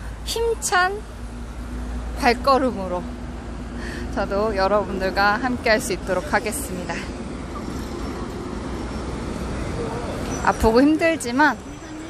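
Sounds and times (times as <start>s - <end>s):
cars and buses passing: 0.0s - 12.0s.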